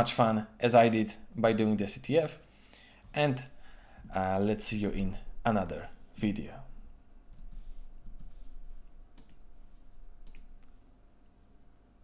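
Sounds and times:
faint low hum: 0:00.0 - 0:12.0
computer mouse clicks: 0:09.1 - 0:10.8.

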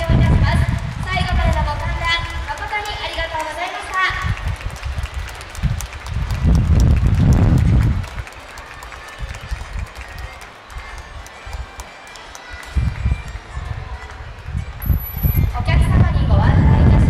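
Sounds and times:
wind buffeting microphone: 0:00.0 - 0:11.8, 0:12.4 - 0:17.0
light audience clapping: 0:00.0 - 0:15.0.

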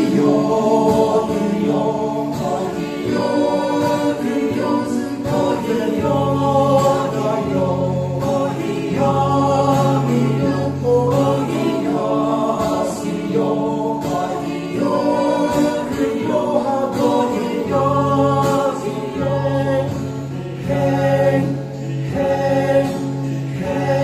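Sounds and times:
group singing in harmony: 0:00.0 - 0:24.0
strummed acoustic guitar: 0:00.0 - 0:24.0.

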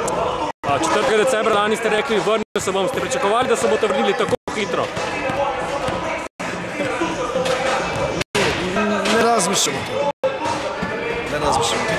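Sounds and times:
basketballs bouncing: 0:02.6 - 0:09.4.

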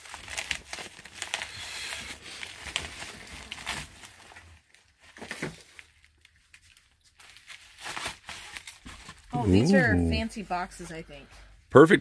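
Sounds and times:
packaging rustling and crinkling: 0:00.0 - 0:09.3.

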